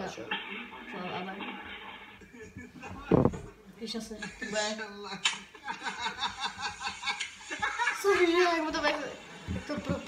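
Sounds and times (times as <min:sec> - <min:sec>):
speech from laptop speakers: 0:00.0 - 0:06.3, 0:07.5 - 0:10.0.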